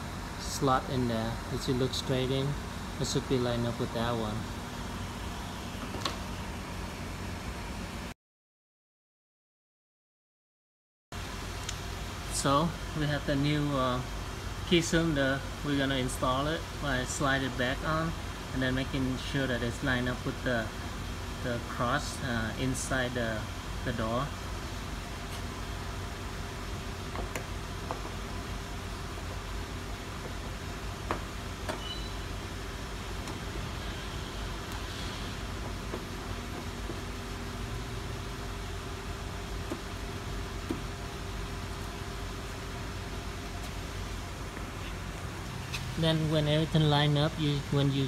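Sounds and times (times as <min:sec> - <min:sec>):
steady background hum: 0:00.0 - 0:08.2, 0:11.2 - 0:48.0.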